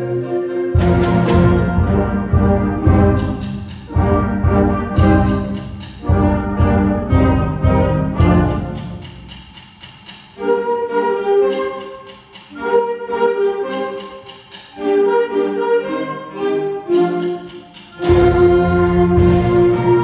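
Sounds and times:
concert band playing: 0.0 - 10.1, 17.7 - 20.0.

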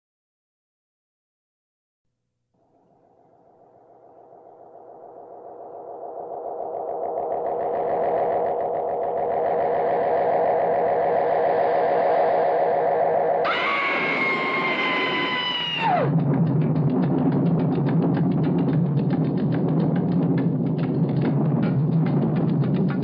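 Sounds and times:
eerie pulsing electronic drone: 2.7 - 23.0
long high sustained cry: 13.4 - 16.1.

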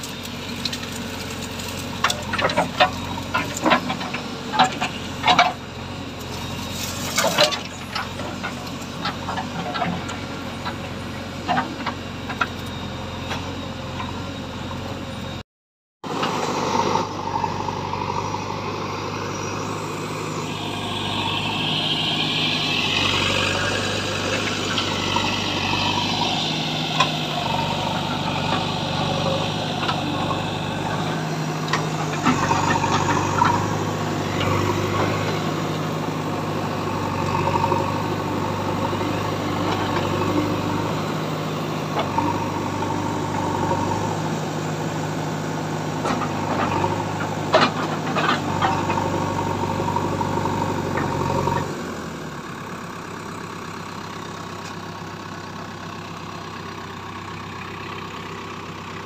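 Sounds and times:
diesel engine running: 0.0 - 15.4, 16.0 - 59.0.

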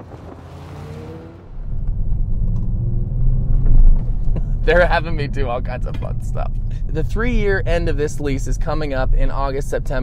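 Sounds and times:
car engine accelerating: 0.0 - 10.0
low exhaust rumble: 1.4 - 10.0.

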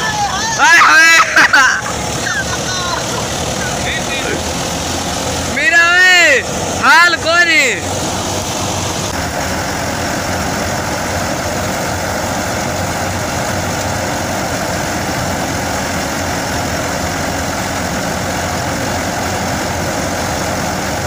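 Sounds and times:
tractor engine and thresher running: 0.0 - 21.0.

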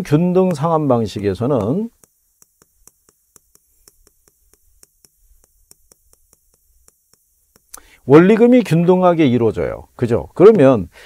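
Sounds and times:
chalk tapping on chalkboard: 0.0 - 8.5.

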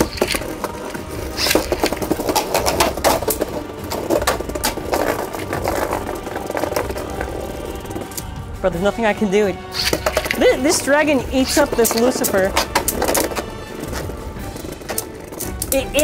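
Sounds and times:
spinning tops clattering: 0.0 - 8.4, 9.7 - 16.0.

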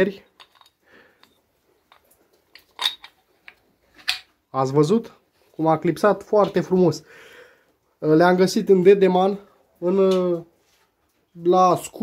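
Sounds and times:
metal hose couplings clicking: 0.3 - 4.3.

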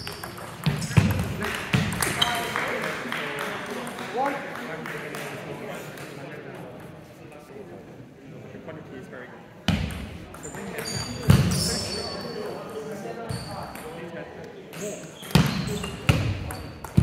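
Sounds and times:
murmur of voices: 0.6 - 17.0
shoe squeaks: 2.1 - 2.5, 10.4 - 12.6, 13.2 - 13.8, 14.7 - 16.8.

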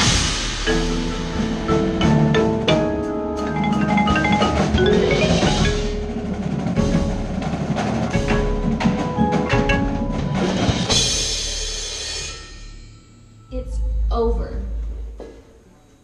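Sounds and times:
marimba played with mallets: 0.4 - 14.5.

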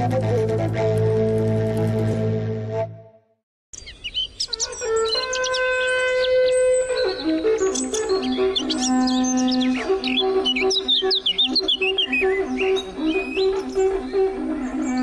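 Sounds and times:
birds chirping and singing: 3.8 - 15.0.

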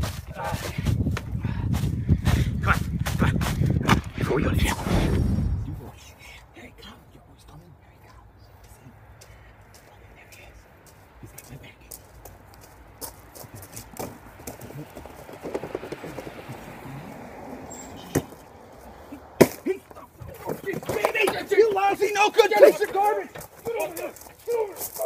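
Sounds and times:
footsteps crunching on gravel: 8.6 - 15.4.

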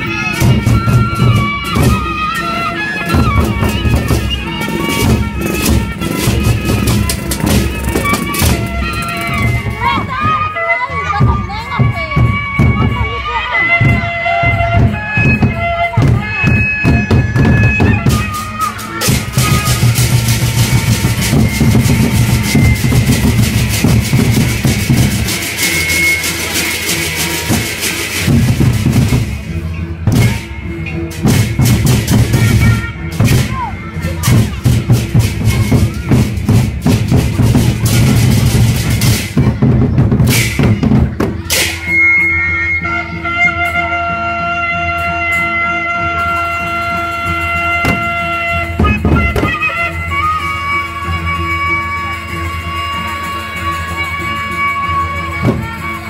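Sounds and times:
large barrel drums beaten: 0.0 - 10.4, 13.8 - 41.8, 47.7 - 49.8.

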